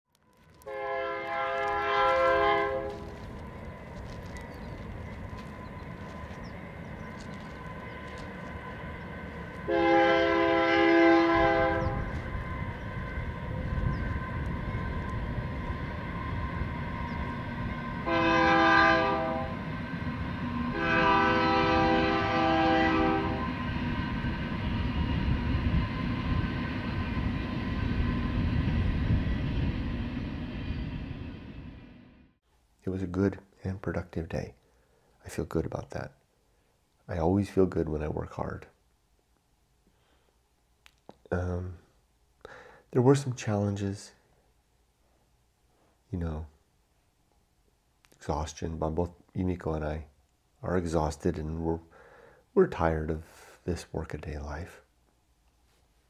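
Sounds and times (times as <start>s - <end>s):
train rumbling: 0.2s - 33.1s
train horn blasts: 0.6s - 3.3s, 9.6s - 19.7s, 20.6s - 23.9s.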